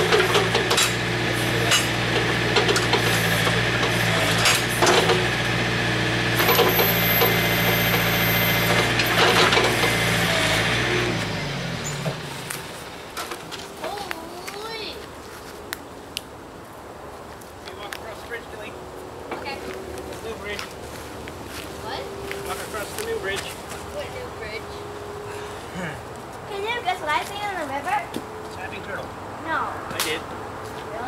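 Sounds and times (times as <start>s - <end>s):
voices calling and talking: 0.0s - 5.3s, 13.4s - 16.3s, 17.3s - 31.0s.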